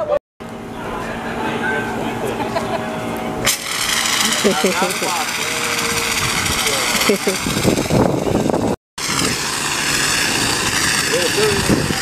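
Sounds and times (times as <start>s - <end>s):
fire extinguisher hissing: 3.5s - 7.9s, 9.0s - 12.0s.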